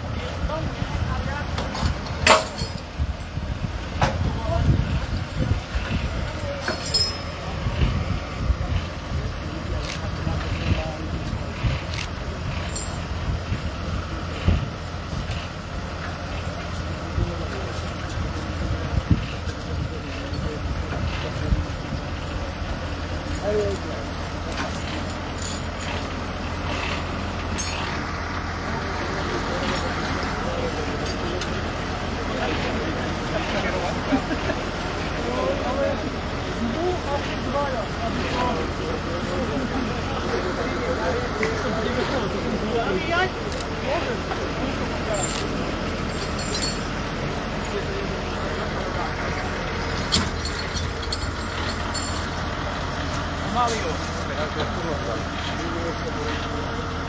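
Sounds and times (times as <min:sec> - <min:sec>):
people talking quietly: 0:00.0 - 0:57.0
tractor engine idling: 0:00.0 - 0:57.0.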